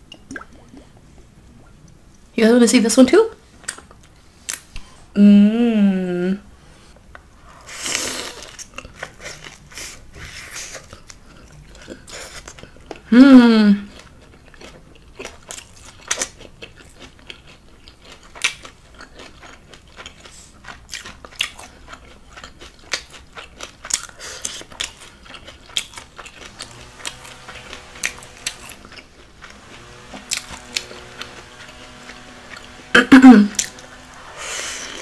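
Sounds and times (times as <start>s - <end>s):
person chewing crunchy food: 7.5s - 13.1s, 13.9s - 35.0s.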